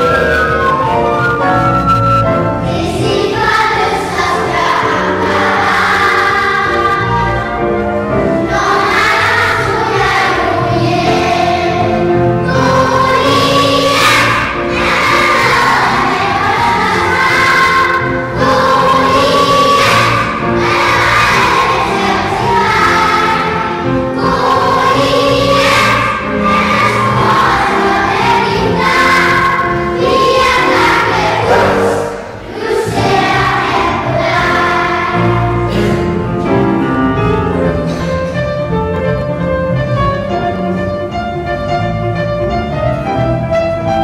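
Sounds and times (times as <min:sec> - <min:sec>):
children's choir singing: 0:00.0 - 0:39.0.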